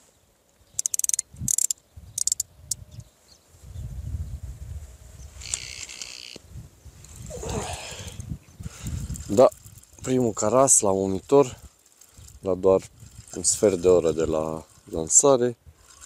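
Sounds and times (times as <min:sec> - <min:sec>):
sharp clicks and rattles: 0:00.5 - 0:02.8, 0:05.4 - 0:06.4, 0:08.7 - 0:16.0.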